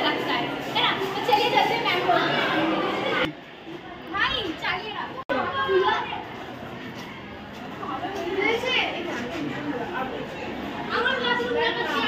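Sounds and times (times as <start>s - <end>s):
busy chatter of voices: 0.0s - 12.0s.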